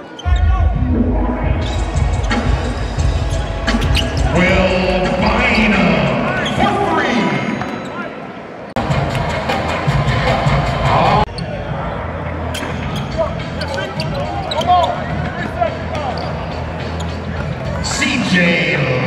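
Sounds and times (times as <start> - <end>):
music in a hall: 0.3 - 6.4, 8.8 - 15.0.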